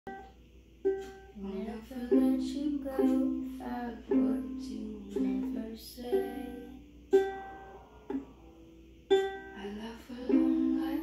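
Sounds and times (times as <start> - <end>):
ukulele chords strummed: 0.1 - 11.0
girl singing: 1.0 - 8.4, 9.1 - 11.0.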